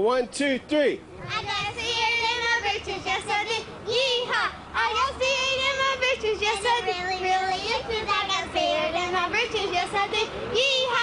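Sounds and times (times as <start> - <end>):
girl singing into a microphone: 1.2 - 11.0.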